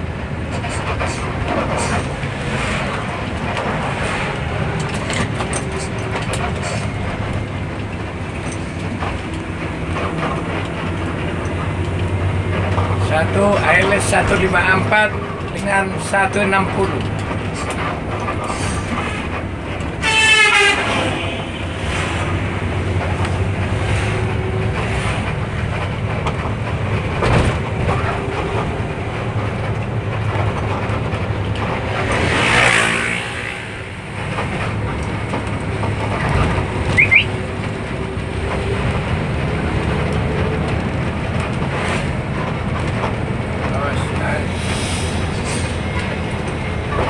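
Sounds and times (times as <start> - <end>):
bus engine rumble: 0.0 - 47.0
loud horn blast: 20.0 - 22.1.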